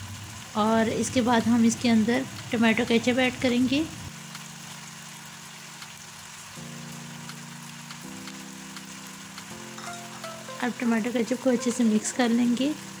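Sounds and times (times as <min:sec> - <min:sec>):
food sizzling in a wok: 0:00.0 - 0:13.0
soft background music: 0:00.6 - 0:13.0.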